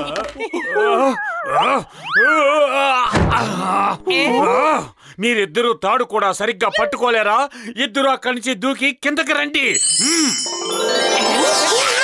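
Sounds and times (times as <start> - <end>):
man groaning in pain: 2.4 - 5.0
cartoon body thud on floor: 3.1 - 3.5.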